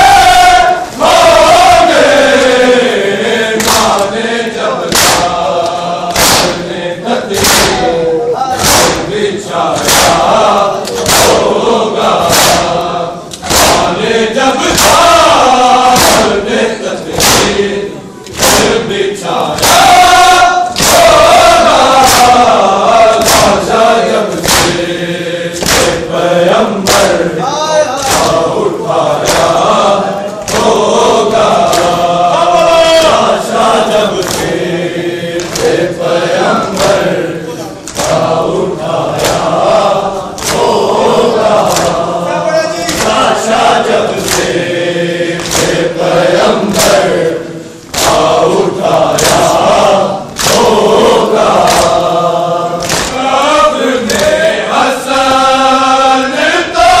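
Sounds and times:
crowd of men chanting: 0.0 - 57.0
rhythmic chest-beating slaps: 0.0 - 57.0.

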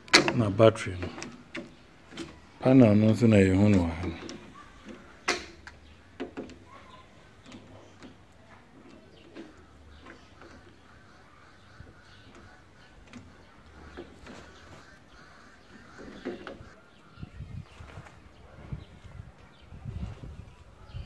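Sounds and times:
birds calling: 0.0 - 21.0.

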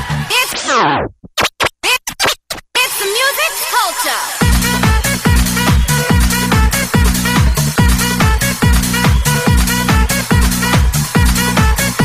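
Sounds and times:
turntable slowing pitch sweep: 0.0 - 2.6
electronic dance music: 0.0 - 12.0
short chopped music bursts: 1.4 - 12.0.

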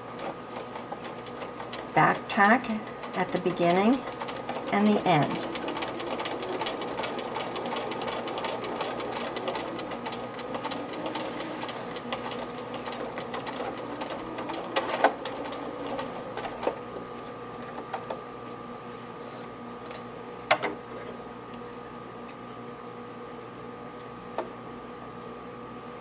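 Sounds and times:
sewing machine stitching: 0.5 - 16.8.

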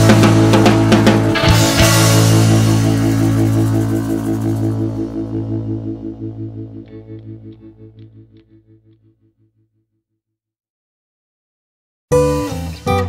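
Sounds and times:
wavering electric guitar chord: 0.0 - 8.9.

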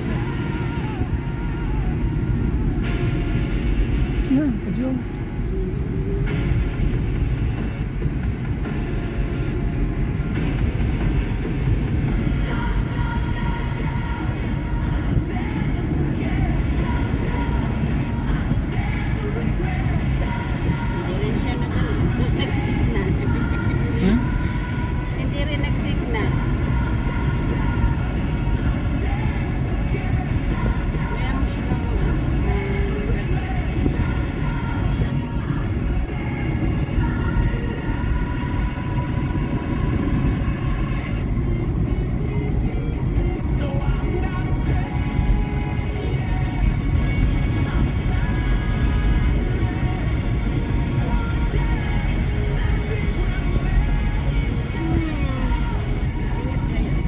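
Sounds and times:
car road and engine noise: 0.0 - 57.0
music from car speakers: 0.0 - 57.0.

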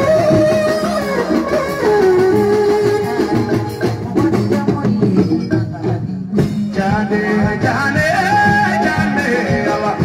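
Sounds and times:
live dance music with guitar: 0.0 - 10.0.

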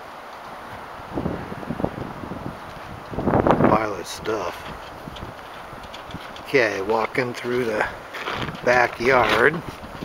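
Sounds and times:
wind rumbling on microphone: 0.0 - 10.0
man's voice: 6.5 - 8.0, 8.6 - 9.7.

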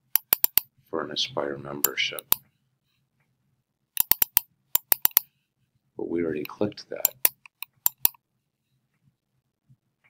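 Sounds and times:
mouse button clicking: 4.0 - 5.2, 7.0 - 8.2.

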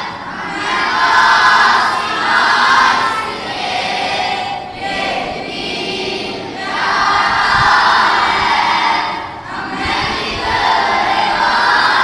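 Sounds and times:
boys chanting in unison: 0.0 - 12.0.

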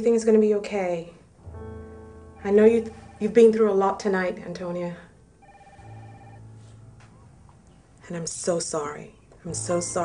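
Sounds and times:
faint steady multi-pitch tone: 2.2 - 4.1, 5.3 - 7.3.

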